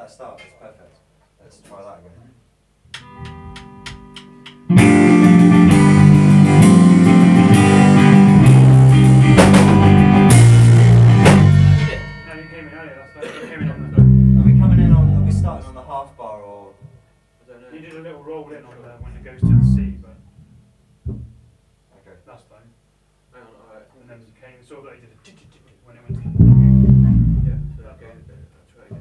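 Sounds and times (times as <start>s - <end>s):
people talking: 0.0s - 2.4s, 11.8s - 16.8s, 17.5s - 20.3s, 23.4s - 29.0s
picked electric guitar notes: 3.0s - 12.2s, 13.6s - 15.8s, 19.1s - 20.1s, 26.1s - 27.9s
rock band playing riff: 3.0s - 12.5s, 13.5s - 15.8s, 19.3s - 20.1s, 26.1s - 28.0s.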